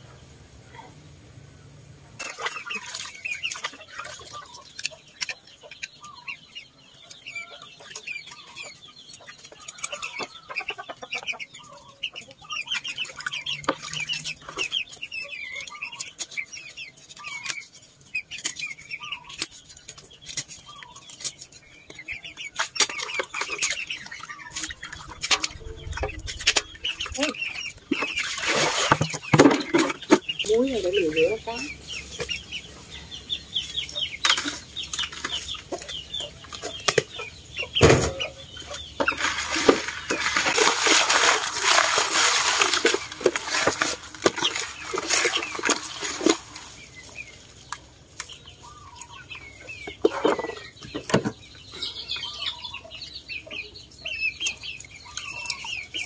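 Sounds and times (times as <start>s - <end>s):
chickens clucking: 0.0s - 56.0s.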